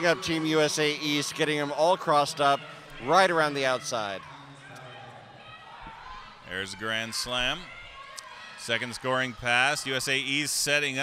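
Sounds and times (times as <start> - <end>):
murmur of distant voices: 0.0 - 11.0.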